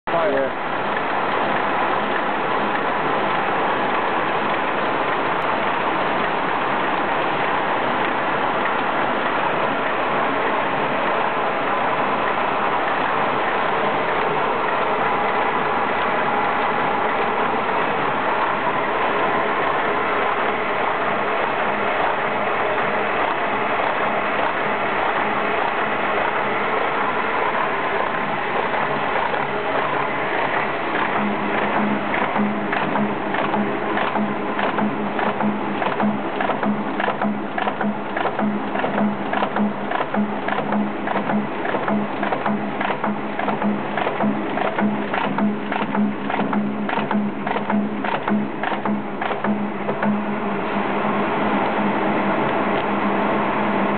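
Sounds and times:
low hum: 13.8 - 53.9
paper folding machine whirring: 19.7 - 53.9
regular mechanical beat: 29.2 - 53.2.

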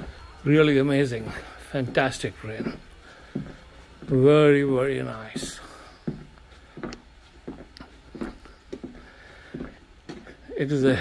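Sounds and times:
footsteps on wooden floor: 0.0 - 10.6
faint low hum: 0.0 - 11.0.

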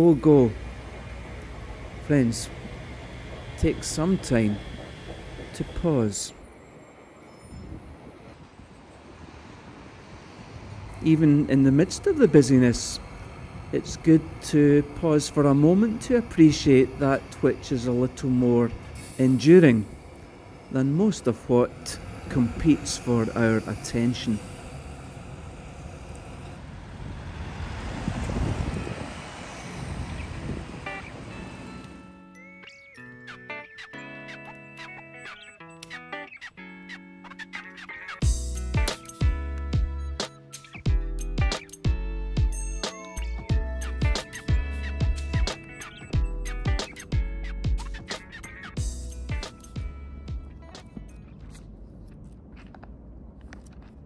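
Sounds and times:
faint street traffic: 0.0 - 40.2, 40.8 - 54.0
bus driving past: 0.0 - 54.0.

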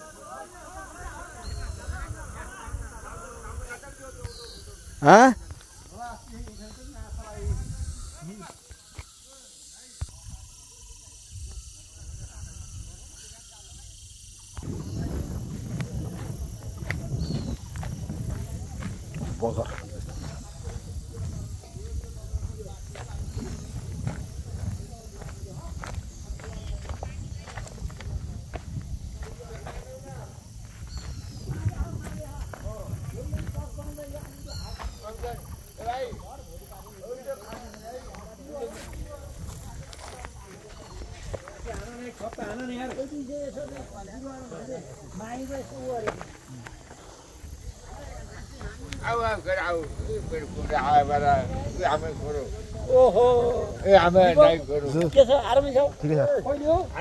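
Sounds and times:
steady high hiss: 0.0 - 26.2
people talking indistinctly: 0.0 - 57.0
wind rumble on microphone: 0.7 - 8.4, 10.0 - 41.9, 46.5 - 57.0.

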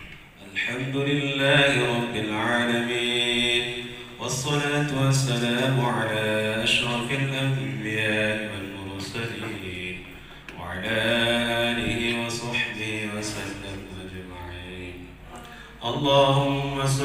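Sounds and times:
man chanting into a microphone: 0.4 - 17.0.

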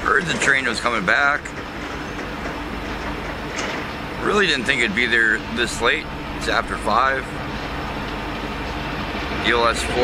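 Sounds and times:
diesel locomotive engine drone: 0.0 - 10.0
faint steady hum: 0.0 - 10.0.

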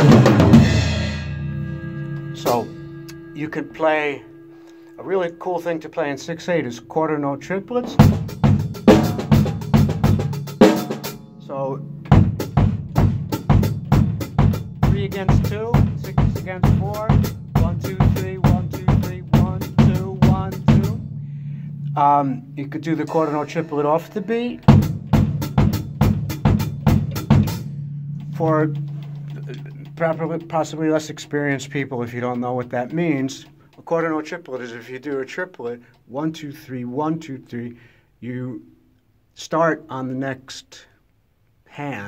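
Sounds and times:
drum kit played with sticks: 0.0 - 36.7.

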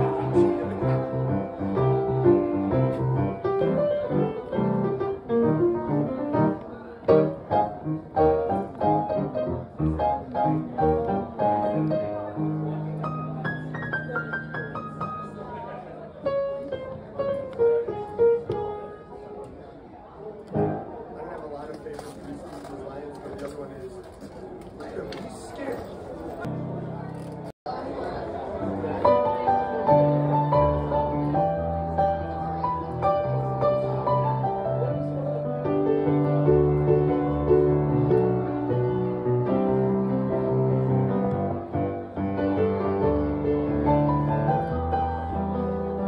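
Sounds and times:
solo piano: 0.0 - 19.4, 20.5 - 21.0, 28.6 - 46.0.

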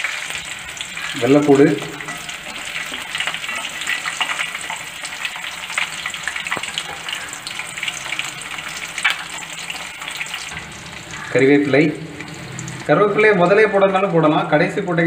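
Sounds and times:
frying in hot oil sizzle: 0.0 - 15.0.

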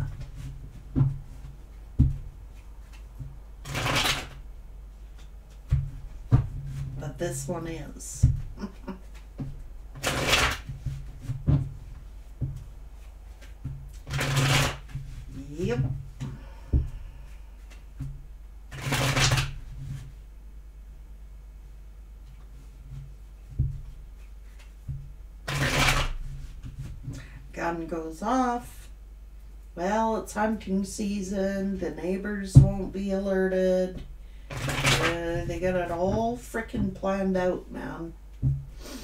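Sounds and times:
cards being shuffled: 0.0 - 4.4, 8.7 - 15.5, 18.7 - 20.1, 25.4 - 27.0, 34.5 - 35.5
cards riffle shuffling: 2.5 - 4.4, 10.0 - 11.1, 13.0 - 15.4, 18.7 - 19.6, 25.5 - 26.2.

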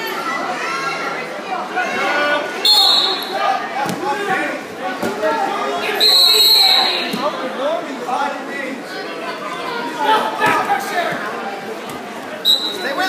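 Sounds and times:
crowd talking and calling out: 0.0 - 13.0
shrill whistle blasts: 2.6 - 3.4, 6.0 - 7.1, 12.4 - 13.0.

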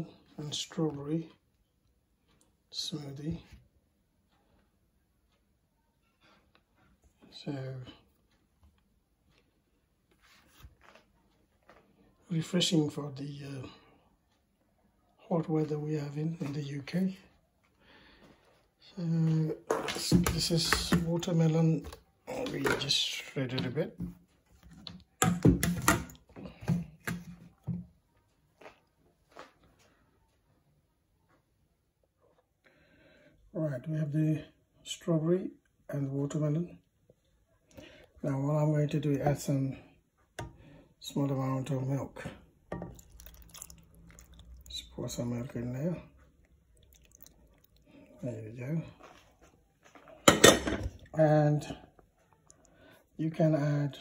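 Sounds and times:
kitchenware clatter: 50.2 - 51.1.

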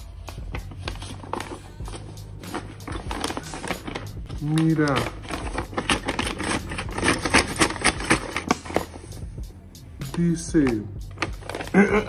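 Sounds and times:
soft background music: 0.0 - 12.0
paper envelope crackling: 0.6 - 9.0, 11.2 - 11.9.

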